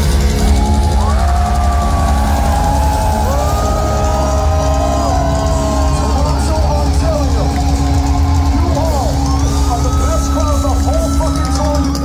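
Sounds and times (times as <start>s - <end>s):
distorted electric guitars: 0.0s - 12.0s
low bass rumble: 0.0s - 12.0s.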